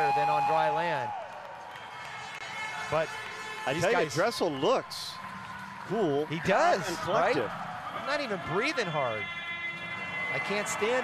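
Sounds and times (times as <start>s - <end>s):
indoor arena hum: 0.0s - 11.0s
faint background music: 3.0s - 11.0s.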